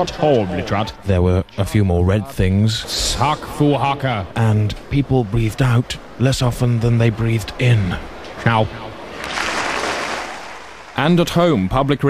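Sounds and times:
applause: 9.2s - 10.4s.

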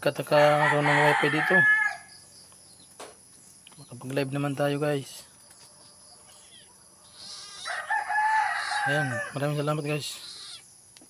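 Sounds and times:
rooster crowing: 0.4s - 2.2s, 7.0s - 9.5s.

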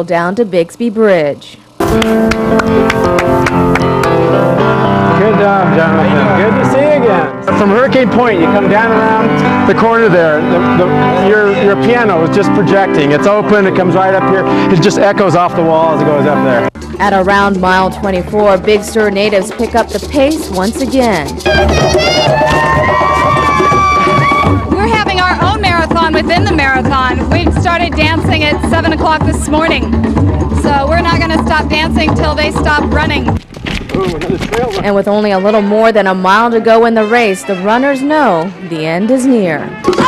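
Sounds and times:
background music: 1.8s - 33.4s, 34.7s - 40.0s
grand piano playing: 1.8s - 33.4s
high voices cheering: 21.4s - 24.9s.

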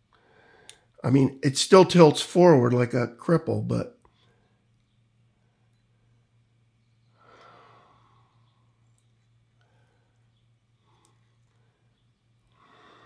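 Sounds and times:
faint breaths: 0.0s - 1.0s, 7.0s - 13.0s
faint clicks: 0.1s - 0.9s, 8.6s - 12.6s.

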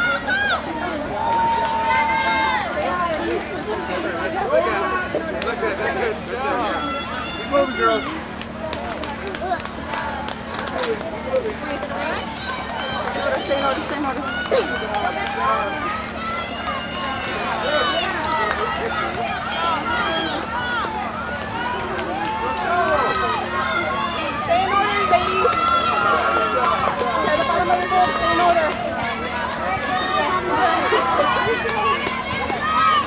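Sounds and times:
crowd shouting and cheering: 0.0s - 33.0s.

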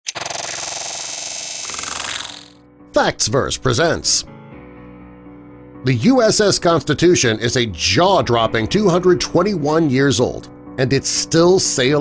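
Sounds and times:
dense electronic buzzing tone: 0.1s - 2.6s.

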